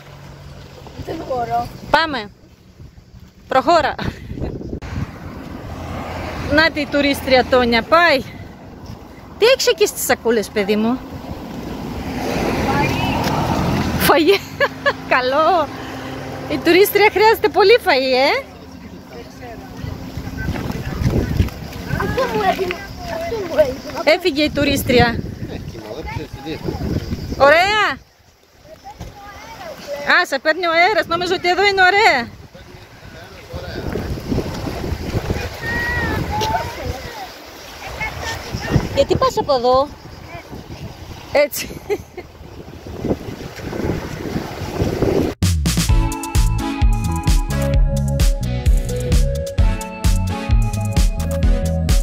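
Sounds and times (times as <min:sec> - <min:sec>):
wind buffeting microphone: 0:00.0 - 0:29.8, 0:30.6 - 0:45.4
faint voices: 0:15.1 - 0:28.0.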